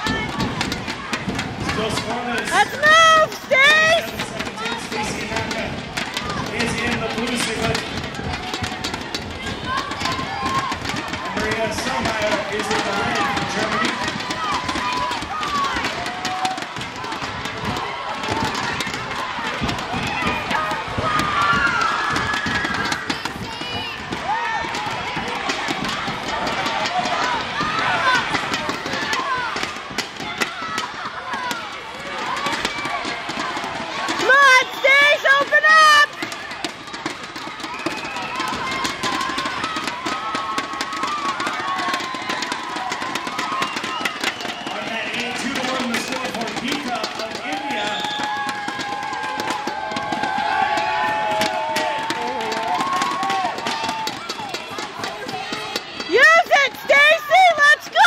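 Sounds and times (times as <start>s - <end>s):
people shouting: 0.0s - 58.0s.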